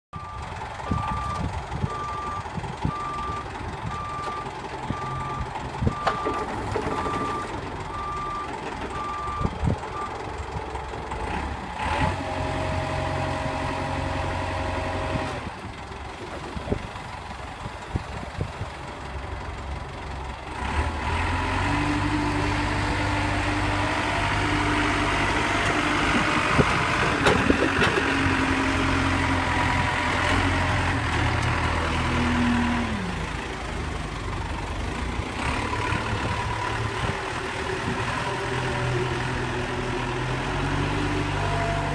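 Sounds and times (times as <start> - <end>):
diesel engine running: 0.2 - 41.9.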